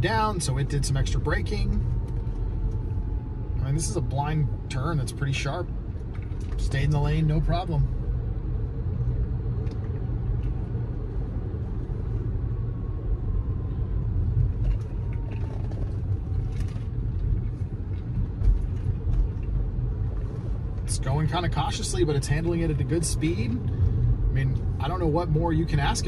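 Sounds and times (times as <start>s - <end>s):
low road and tyre rumble: 0.0s - 26.0s.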